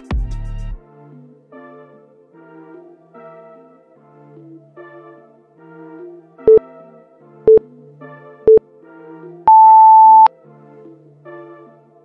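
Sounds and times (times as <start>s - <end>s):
soft background music: 0.0s - 12.0s
electronic timer beeps: 9.5s - 10.3s.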